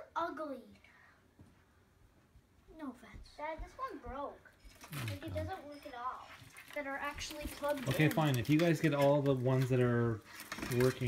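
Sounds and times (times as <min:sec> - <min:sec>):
high voice talking: 0:05.0 - 0:05.7.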